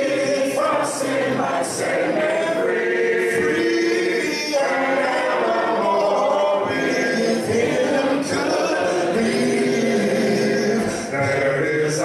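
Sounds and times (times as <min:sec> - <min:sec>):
group singing a hymn a cappella: 0:00.0 - 0:12.0.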